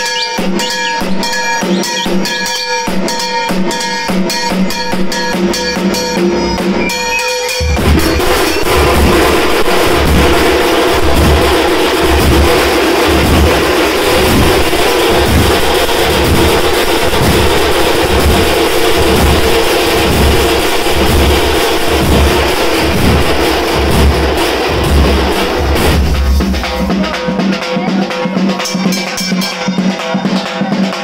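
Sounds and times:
frame drums struck with sticks: 0.1s - 31.0s.

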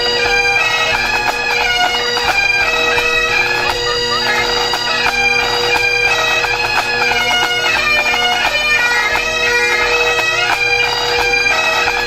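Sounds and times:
bagpipes playing: 0.0s - 12.0s.

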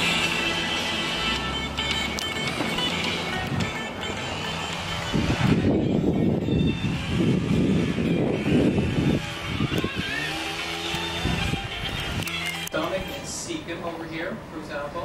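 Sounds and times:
background music: 0.0s - 14.1s
wind rumble on microphone: 5.0s - 12.3s.

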